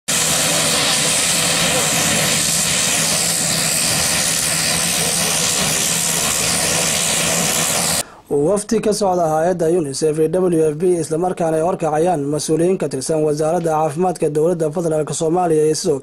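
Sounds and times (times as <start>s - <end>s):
propeller plane engines running: 0.1s - 8.0s.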